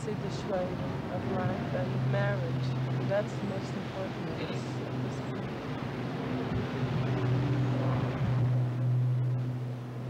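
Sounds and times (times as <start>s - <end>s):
low engine drone: 0.0s - 10.0s.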